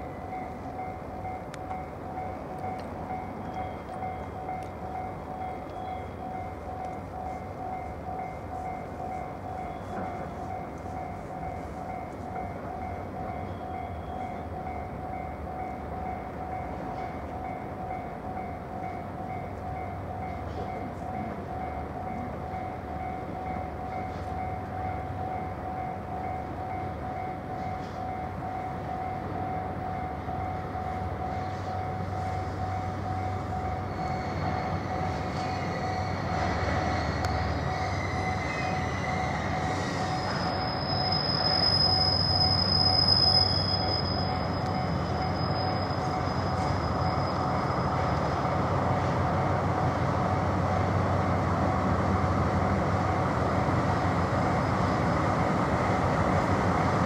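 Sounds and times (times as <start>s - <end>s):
diesel locomotive engine drone: 0.0s - 57.0s
rapidly pulsing ringing tone: 3.1s - 49.1s.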